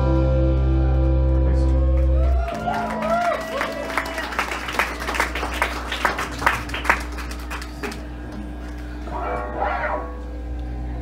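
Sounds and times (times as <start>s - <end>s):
audience clapping: 1.3s - 8.8s
shout or whoop: 1.8s - 4.3s
amplifier electrical hum: 5.7s - 11.0s.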